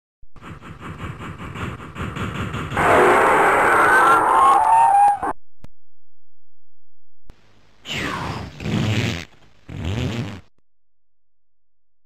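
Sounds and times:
steam locomotive chuffing: 0:00.4 - 0:03.2.

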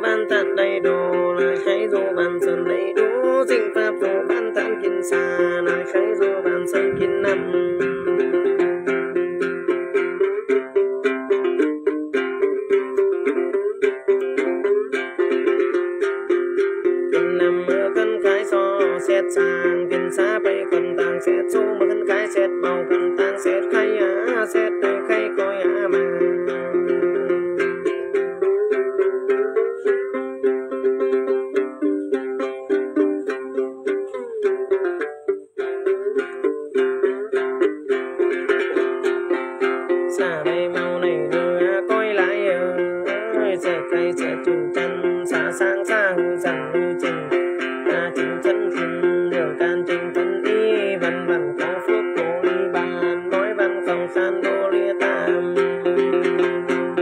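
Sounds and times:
man chanting: 0:00.0 - 0:09.9, 0:17.1 - 0:27.4, 0:39.9 - 0:57.0
plucked lute: 0:00.0 - 0:57.0.

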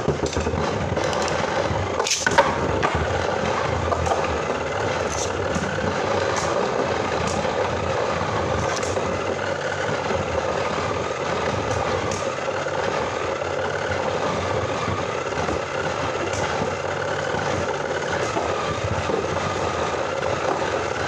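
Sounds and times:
spinning tops whirring and scraping: 0:00.0 - 0:21.0.

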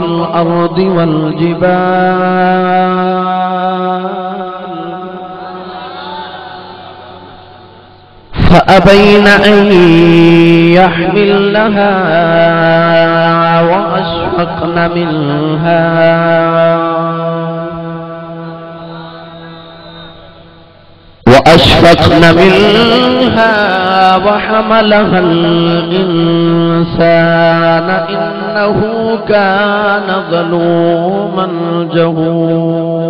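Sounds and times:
man chanting over loudspeakers: 0:00.0 - 0:33.0.

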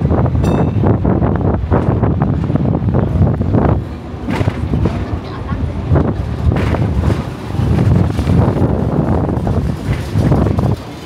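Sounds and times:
tram rumbling on rails: 0:00.0 - 0:11.0
wind on microphone: 0:00.0 - 0:11.0.

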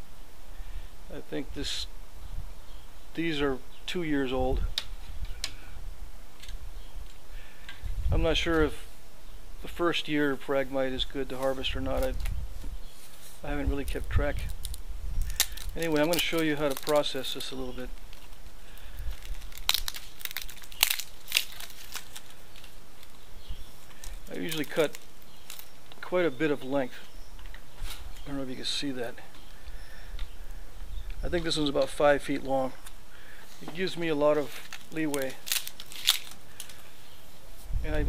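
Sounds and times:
faint steady hiss: 0:00.0 - 0:38.0
man speaking: 0:01.1 - 0:01.9, 0:13.4 - 0:14.5, 0:15.8 - 0:18.0, 0:24.3 - 0:25.0, 0:28.3 - 0:29.3, 0:31.2 - 0:32.8, 0:33.6 - 0:35.4
dry crackles: 0:09.6 - 0:38.0
dry leaves peeling and tearing: 0:11.3 - 0:26.1, 0:33.6 - 0:37.0.

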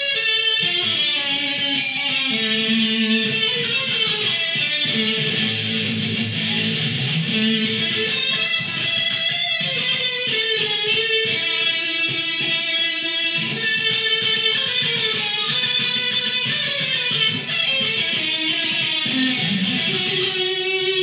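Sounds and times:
electric guitar waltz melody: 0:00.0 - 0:21.0.

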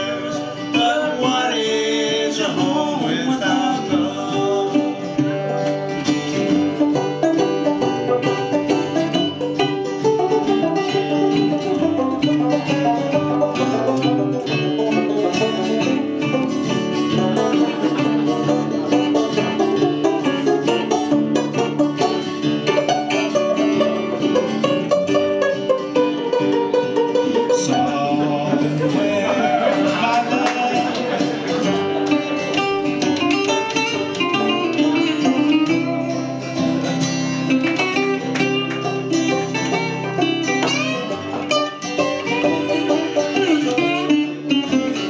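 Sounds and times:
acoustic guitar: 0:00.0 - 0:45.0
banjo: 0:00.0 - 0:45.0
slide resonator guitar: 0:00.0 - 0:45.0.

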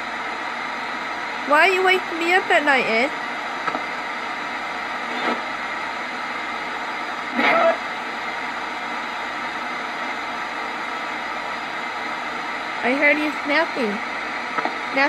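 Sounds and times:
radio static hiss: 0:00.0 - 0:15.0.

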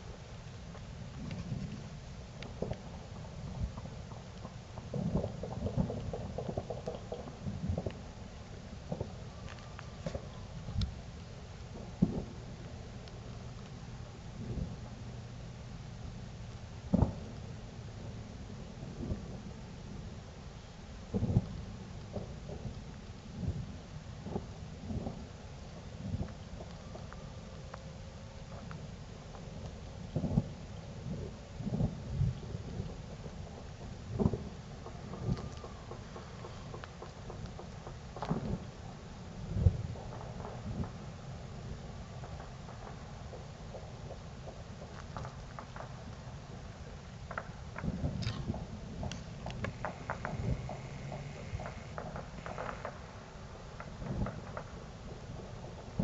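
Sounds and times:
fireworks popping and booming: 0:00.0 - 0:11.0, 0:11.6 - 0:13.8, 0:16.9 - 0:17.5, 0:21.1 - 0:27.2, 0:28.4 - 0:56.0.

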